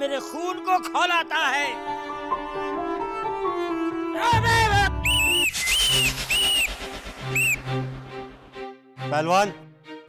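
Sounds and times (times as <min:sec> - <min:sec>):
faint background music: 0:00.0 - 0:10.0
high whistle notes: 0:04.9 - 0:07.9.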